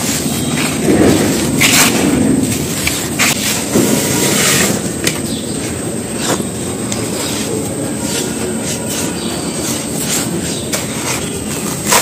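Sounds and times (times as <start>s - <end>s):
hand scraping sandy dirt: 6.1s - 12.0s.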